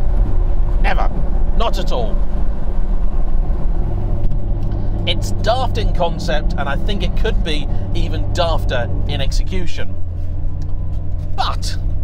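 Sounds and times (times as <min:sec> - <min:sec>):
car engine drone from inside cabin: 0:00.0 - 0:12.0
tyre and road noise: 0:00.0 - 0:12.0.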